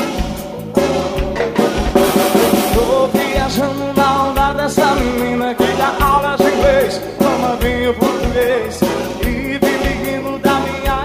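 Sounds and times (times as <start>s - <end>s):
drum kit beats: 0.0s - 11.0s
live band playing: 0.0s - 11.0s.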